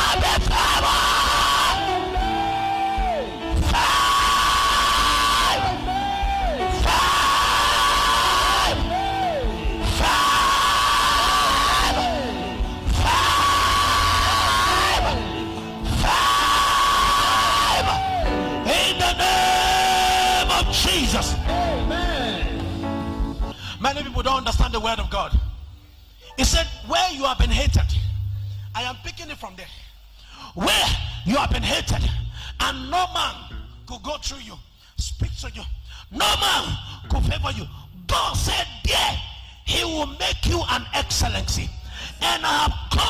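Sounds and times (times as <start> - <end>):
worshippers shouting: 0.0 - 22.5
live church praise music: 0.0 - 43.0.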